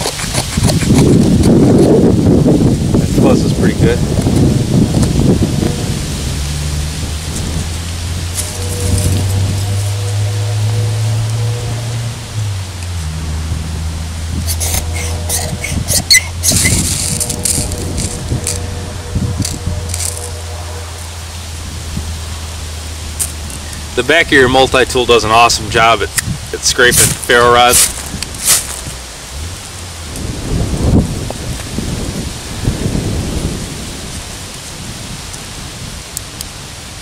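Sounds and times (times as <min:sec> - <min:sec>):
background music of low notes: 0:07.8 - 0:15.3
blade scraping ferrocerium rod: 0:14.4 - 0:18.7.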